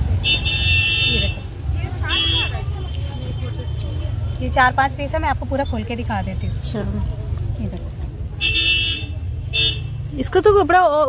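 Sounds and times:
vehicle horn honking: 0.2s - 3.0s, 8.4s - 9.9s.

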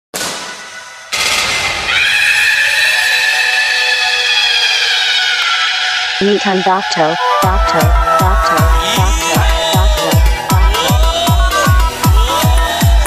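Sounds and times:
electronic noise crash: 0.2s - 3.3s
high shrill sweeping tones: 0.8s - 13.0s.

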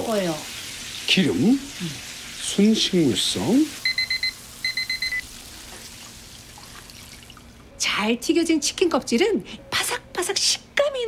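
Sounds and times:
chicken deep-frying in oil: 0.0s - 7.3s
kitchen timer alarm beeps: 3.8s - 5.2s.

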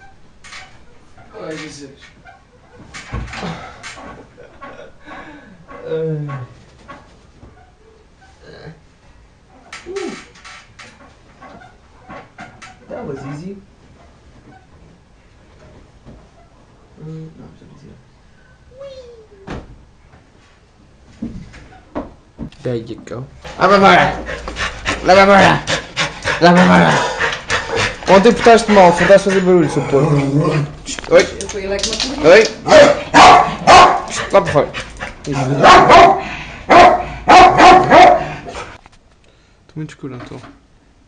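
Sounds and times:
dog panting: 23.7s - 30.8s, 33.0s - 38.8s.

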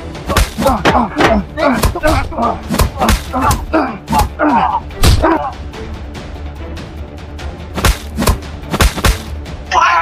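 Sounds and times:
background music with sustained tones: 0.0s - 10.0s
person shouting in pain: 0.3s - 5.6s.

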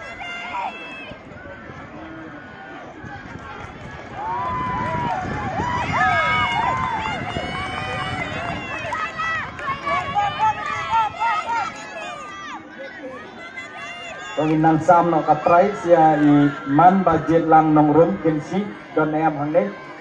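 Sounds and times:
spectators shouting and cheering: 0.0s - 20.0s.

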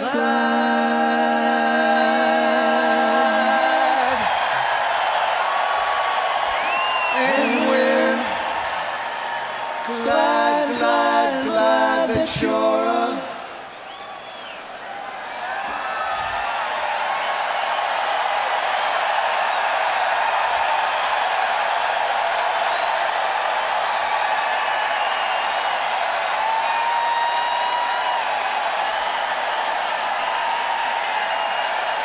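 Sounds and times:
crowd applauding and cheering: 0.0s - 32.0s.

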